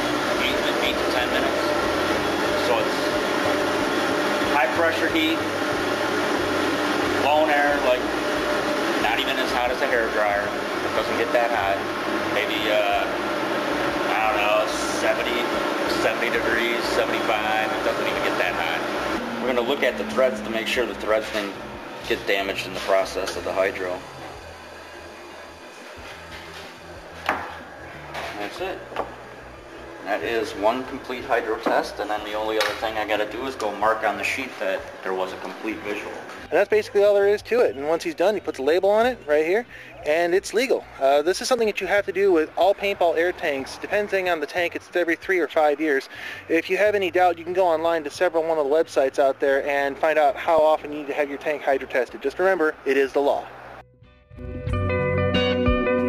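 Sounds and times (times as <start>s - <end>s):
dryer blowing air: 0.0s - 36.6s
low steady hum: 0.0s - 44.0s.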